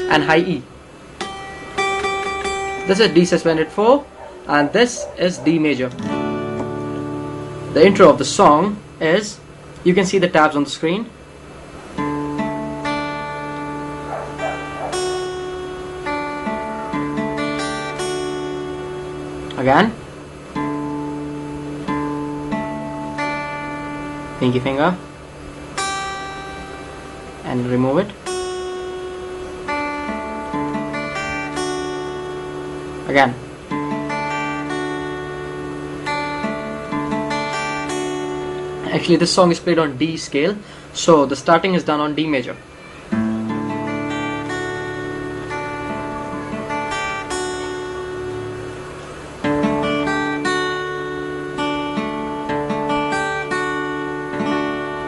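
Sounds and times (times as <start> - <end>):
acoustic guitar string plucked: 1.2 - 10.1, 11.9 - 39.8, 42.8 - 55.0.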